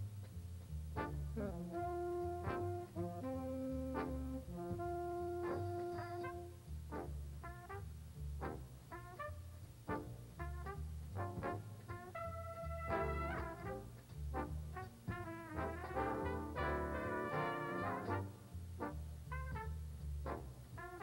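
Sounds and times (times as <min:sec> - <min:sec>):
big band swing jazz: 0:00.0 - 0:21.0
walking bass line: 0:00.0 - 0:21.0.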